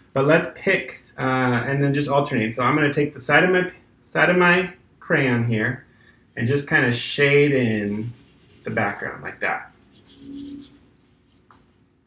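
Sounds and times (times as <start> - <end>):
low hum-like tone: 6.4 - 10.9
crayon rubbing on paper: 7.3 - 11.6.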